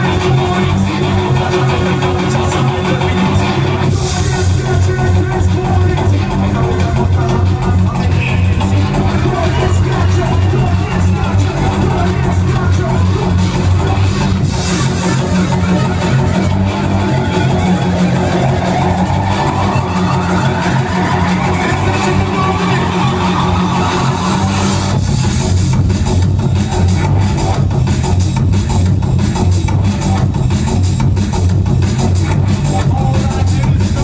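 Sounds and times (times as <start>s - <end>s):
drum and bass music: 0.0s - 34.0s
rising sweep: 13.8s - 25.5s.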